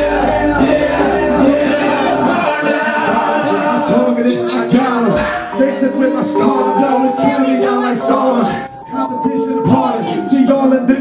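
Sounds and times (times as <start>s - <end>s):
man rapping into microphone: 4.0s - 11.0s.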